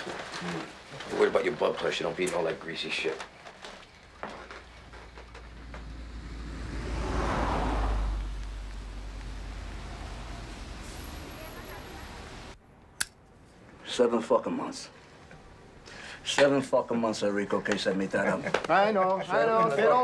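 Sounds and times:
vehicle passing with low rumble: 0:05.0 - 0:12.6.

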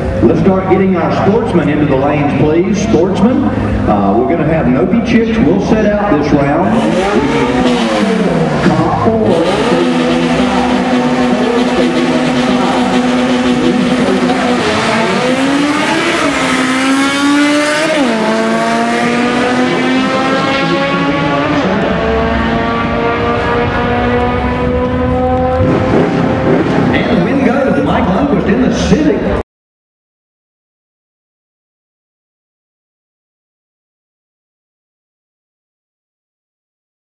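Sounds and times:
racing car engines at full throttle: 0:00.0 - 0:29.4.

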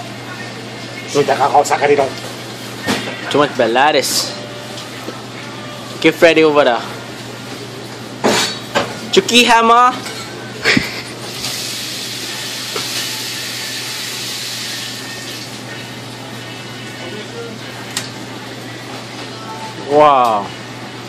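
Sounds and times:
faint music: 0:00.0 - 0:21.0.

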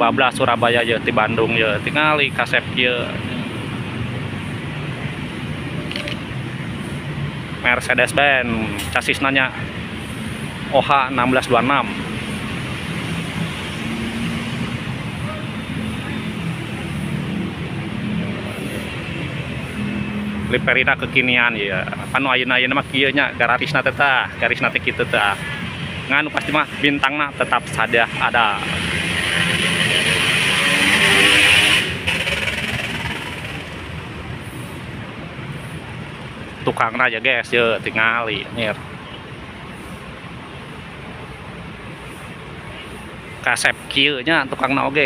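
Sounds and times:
diesel buses idling: 0:14.6 - 0:45.0.

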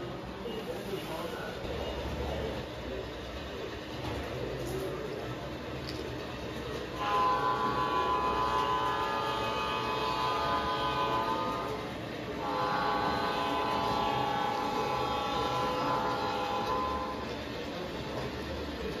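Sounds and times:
model train running on track: 0:00.0 - 0:19.0
diesel air horn blasts: 0:06.9 - 0:17.4.

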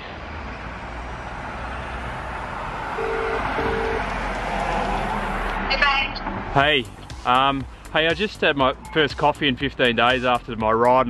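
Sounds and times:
traffic noise: 0:00.0 - 0:10.0
telephone ringback tone: 0:03.0 - 0:04.1.

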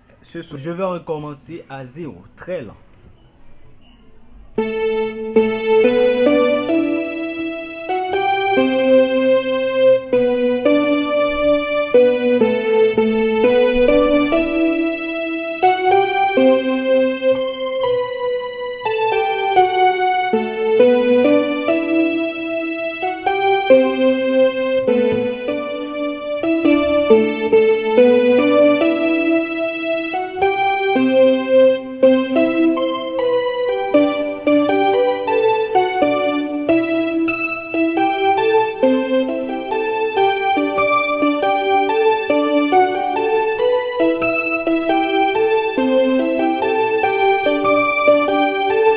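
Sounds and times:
keyboard playing slow melody: 0:02.8 - 0:48.9.

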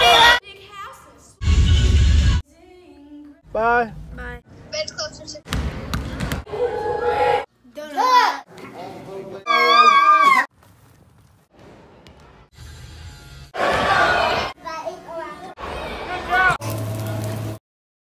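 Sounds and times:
people talking and calling out: 0:06.5 - 0:10.5
children's voices: 0:14.2 - 0:16.4.

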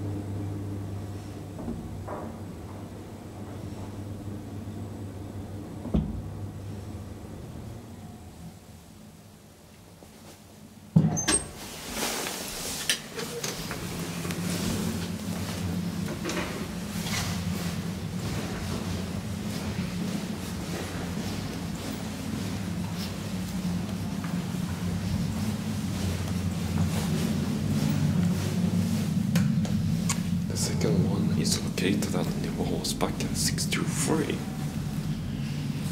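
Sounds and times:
elevator door shutting: 0:00.0 - 0:08.8, 0:11.0 - 0:35.9
steady low hum: 0:00.0 - 0:10.9, 0:11.7 - 0:35.9
footsteps: 0:11.8 - 0:35.9.

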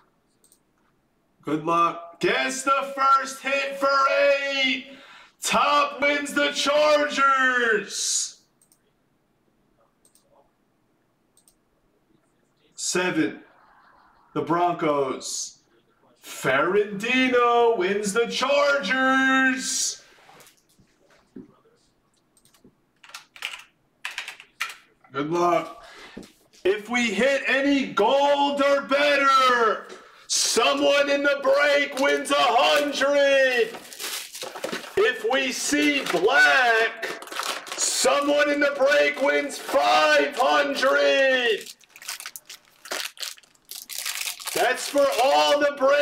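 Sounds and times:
keyboard typing: 0:22.4 - 0:24.9
foil card packs crinkling: 0:31.9 - 0:45.6.

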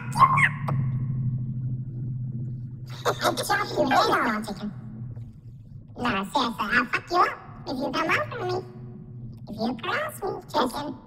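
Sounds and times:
high pitch-shifted voice: 0:00.0 - 0:00.9
steady low hum: 0:00.0 - 0:11.0.

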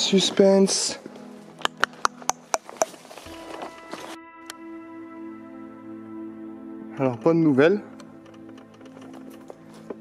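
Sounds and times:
soft background music: 0:00.0 - 0:10.0
dry twigs snapping underfoot: 0:01.5 - 0:04.6.

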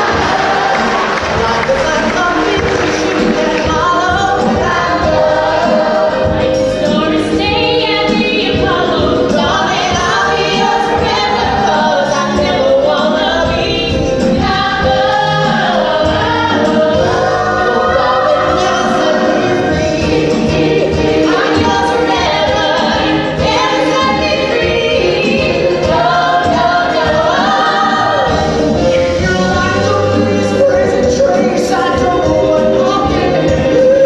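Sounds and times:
orchestra accompaniment: 0:00.0 - 0:34.0
woman and man singing duet: 0:00.0 - 0:34.0.

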